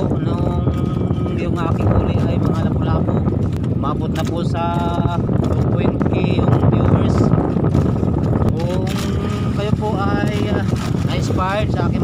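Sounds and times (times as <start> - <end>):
man talking: 0.0 - 7.3, 8.5 - 12.0
boat engine rumble: 0.0 - 12.0
wind buffeting microphone: 0.0 - 12.0.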